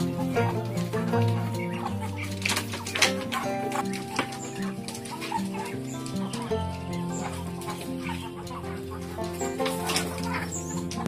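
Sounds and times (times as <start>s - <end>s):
background music of held notes: 0.0s - 11.0s
chickens clucking: 0.0s - 11.0s.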